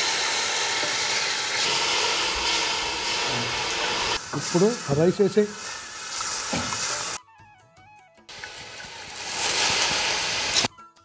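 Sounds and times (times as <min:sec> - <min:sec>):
boiling stock hissing and sizzling: 0:00.0 - 0:07.2, 0:08.3 - 0:10.7
background music: 0:05.0 - 0:11.0.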